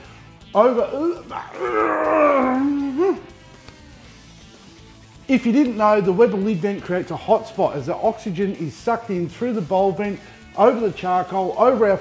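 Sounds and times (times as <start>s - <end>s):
faint background music: 0.0s - 12.0s
man groaning: 0.9s - 4.0s.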